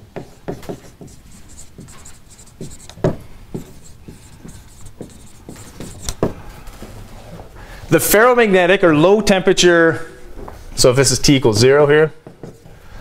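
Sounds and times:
marker writing on whiteboard: 0.2 - 6.4.

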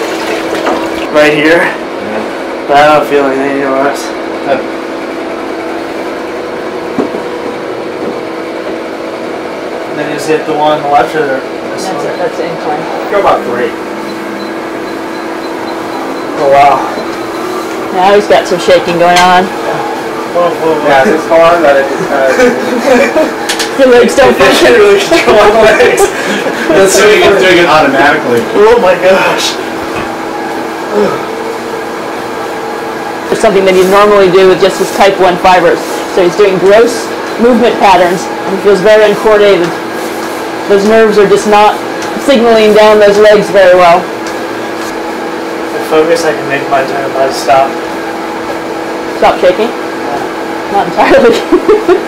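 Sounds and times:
steady two-tone machine hum: 0.0 - 52.0.

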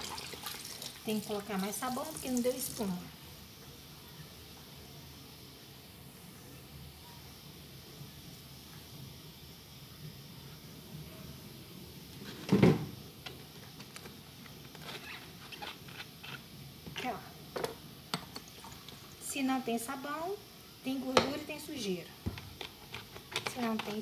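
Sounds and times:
faint steady hiss: 0.0 - 24.0.

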